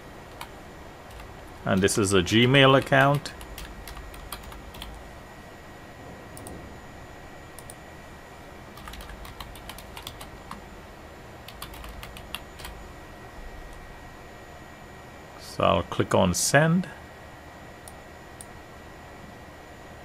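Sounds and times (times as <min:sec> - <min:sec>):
computer keyboard typing: 0:00.3 - 0:05.0, 0:08.8 - 0:10.6, 0:11.5 - 0:12.8.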